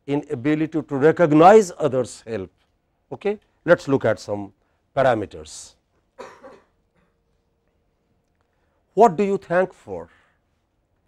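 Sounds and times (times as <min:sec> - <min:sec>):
faint steady hum: 0:00.0 - 0:11.0
short cough: 0:06.2 - 0:07.2.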